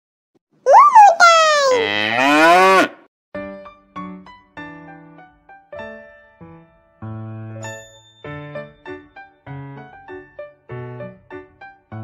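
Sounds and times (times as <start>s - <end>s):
cow mooing: 1.8s - 3.0s.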